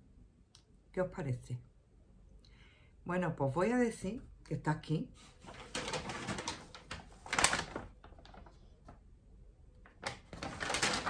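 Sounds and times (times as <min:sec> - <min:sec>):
paper bag rustling and crinkling: 0:05.2 - 0:09.0, 0:09.8 - 0:11.0.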